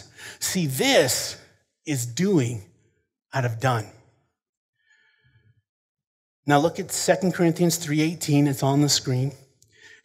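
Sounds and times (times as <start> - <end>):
faint breath: 4.7 - 5.7, 9.7 - 10.0.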